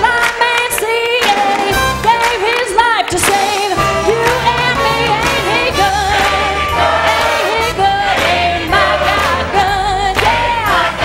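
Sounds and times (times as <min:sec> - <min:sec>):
woman singing with vibrato: 0:00.0 - 0:08.2, 0:09.3 - 0:10.8
band with bass and drums: 0:03.1 - 0:10.9
choir singing: 0:03.6 - 0:11.0.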